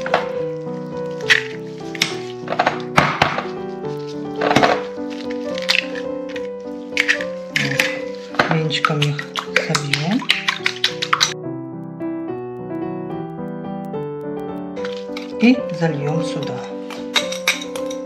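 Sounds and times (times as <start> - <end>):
background music held notes: 0.0 - 18.0
eggs cracking into glass bowl: 4.2 - 11.4.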